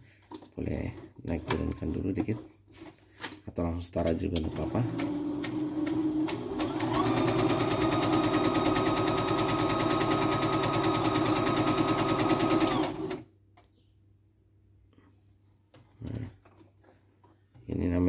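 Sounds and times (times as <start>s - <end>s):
sewing machine stitching: 4.4s - 13.2s.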